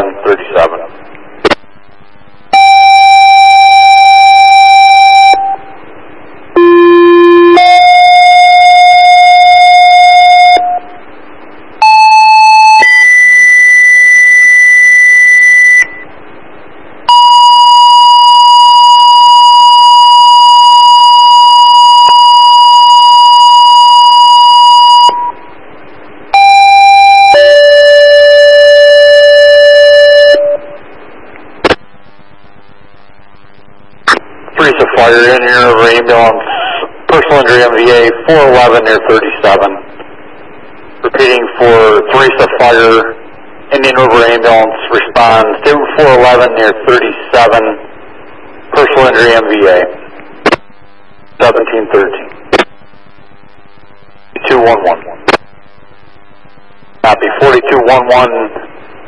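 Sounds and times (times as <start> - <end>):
two-tone radio paging beeps: 17.1 - 25.4.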